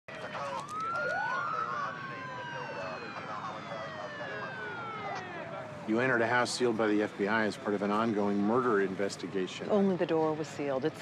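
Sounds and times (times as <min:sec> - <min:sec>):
police sirens wailing: 0:00.1 - 0:11.0.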